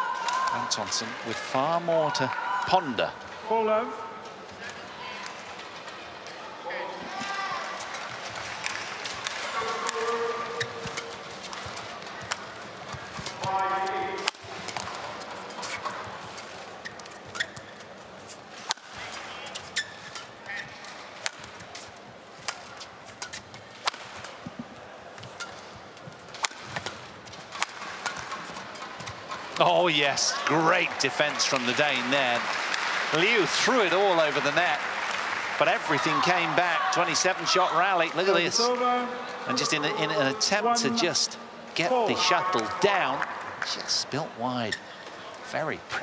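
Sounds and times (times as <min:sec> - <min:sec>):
arena crowd noise: 0:00.0 - 0:46.0
rackets striking shuttlecock: 0:25.2 - 0:29.7
voices rising from crowd: 0:29.6 - 0:46.0.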